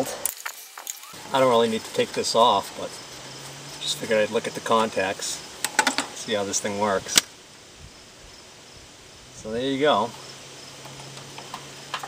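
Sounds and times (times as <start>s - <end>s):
quiet outdoor background: 0.0s - 12.0s.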